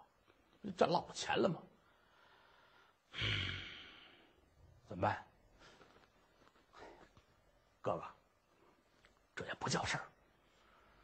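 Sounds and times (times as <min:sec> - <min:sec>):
man sighing: 0:03.1 - 0:04.2.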